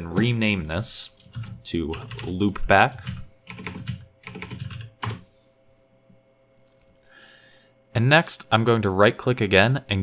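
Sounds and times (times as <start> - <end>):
computer keyboard keys clicking: 1.2 - 5.2.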